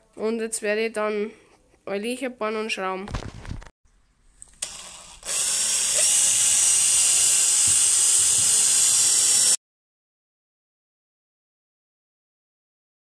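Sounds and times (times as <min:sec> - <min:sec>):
drill boring into wood: 0:04.6 - 0:09.6.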